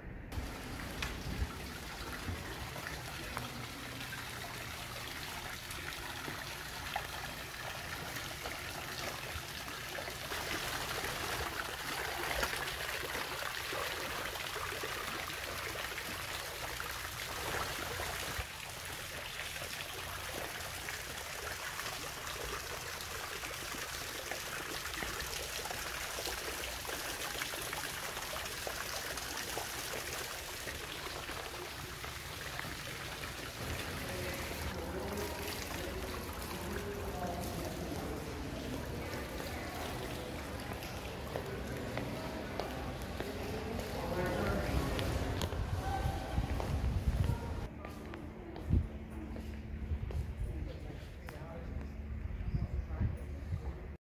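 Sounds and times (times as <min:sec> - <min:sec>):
fountain water splashing: 0:00.3 - 0:47.7.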